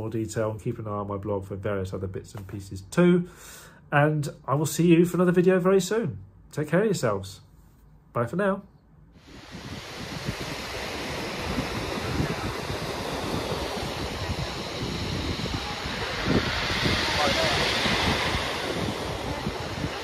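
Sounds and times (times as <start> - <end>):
sea surf breaking on beach: 9.2 - 20.0
wind buffeting microphone: 9.2 - 20.0.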